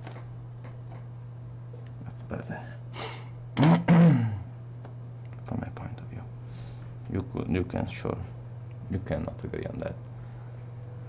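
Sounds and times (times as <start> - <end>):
man clearing his throat: 3.6 - 4.5.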